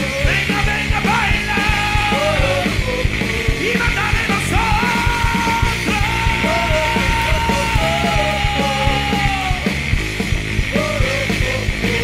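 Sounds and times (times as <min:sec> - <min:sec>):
bass guitar: 0:00.0 - 0:12.0
drum beat: 0:00.0 - 0:12.0
electric guitar: 0:00.0 - 0:12.0.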